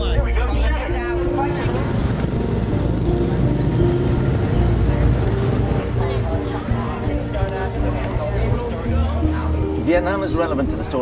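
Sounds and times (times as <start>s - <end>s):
motor traffic: 1.2s - 8.7s.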